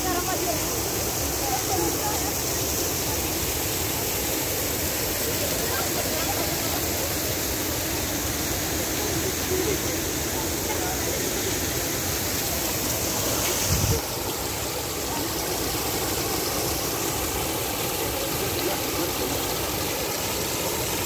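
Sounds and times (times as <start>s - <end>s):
fountain jets splashing: 0.0s - 21.0s.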